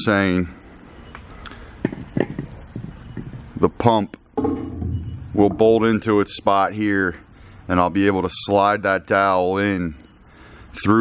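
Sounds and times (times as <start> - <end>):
low steady hum: 0.4 - 7.8.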